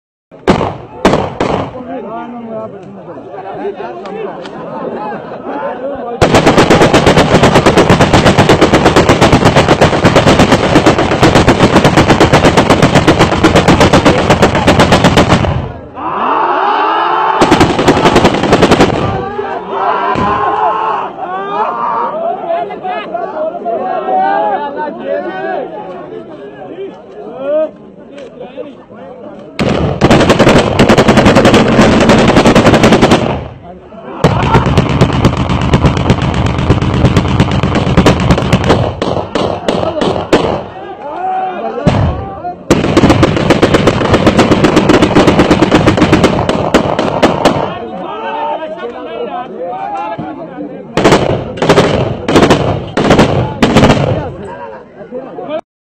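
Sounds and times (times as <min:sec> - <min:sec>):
people shouting: 0:15.8 - 0:18.1, 0:19.0 - 0:25.7, 0:33.9 - 0:35.1, 0:39.1 - 0:42.6, 0:47.6 - 0:50.2.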